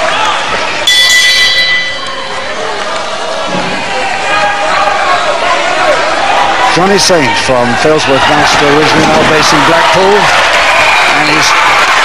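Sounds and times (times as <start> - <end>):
murmur of crowd voices: 0.0 - 12.0
ring bell struck: 0.9 - 2.5.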